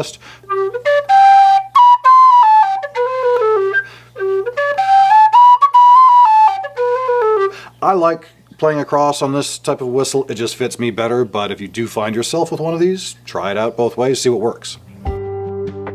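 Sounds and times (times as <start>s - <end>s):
low whistle tune: 0.4s - 7.7s.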